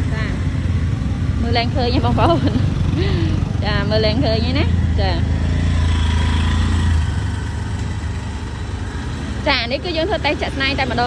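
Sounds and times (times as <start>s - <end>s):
auto-rickshaw engine passing: 0.0s - 11.0s.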